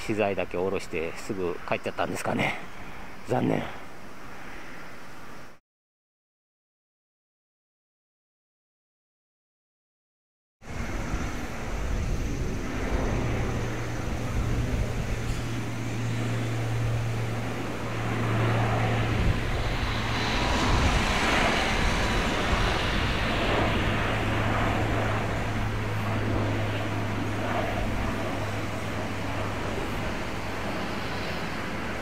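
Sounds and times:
turboprop aircraft drone: 0:10.6 - 0:32.0.

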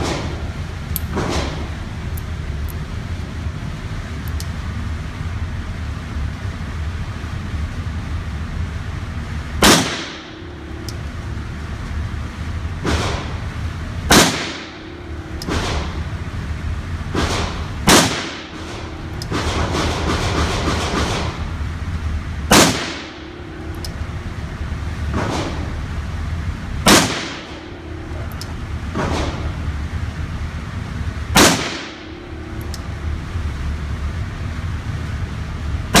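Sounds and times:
steady low hum: 0:00.0 - 0:36.0
revolver shots echoing: 0:09.6 - 0:10.8, 0:12.8 - 0:16.1, 0:17.1 - 0:21.4, 0:22.5 - 0:24.0, 0:26.8 - 0:29.7, 0:31.3 - 0:32.7.

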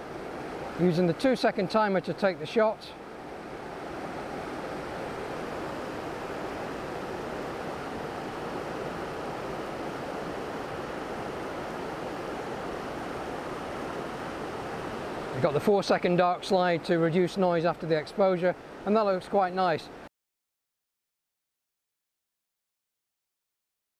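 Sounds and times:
fast-flowing river rushing: 0:00.0 - 0:20.0.

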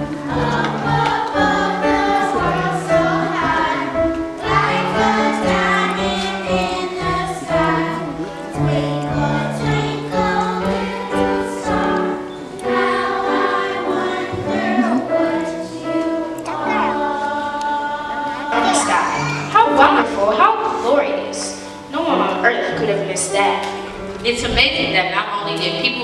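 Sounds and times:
children's choir singing: 0:00.0 - 0:23.8
piano accompaniment: 0:00.0 - 0:26.0.

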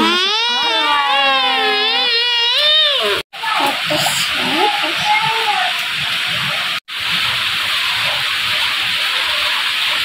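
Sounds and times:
rain on concrete and puddles: 0:00.0 - 0:10.0.

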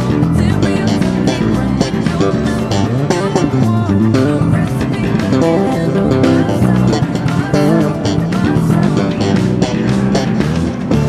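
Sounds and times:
pop backing track: 0:00.0 - 0:11.0
slap bass: 0:00.0 - 0:11.0.

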